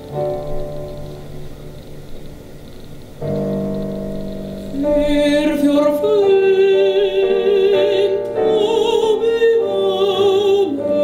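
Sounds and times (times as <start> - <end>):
digital piano chord: 0.0 - 10.0.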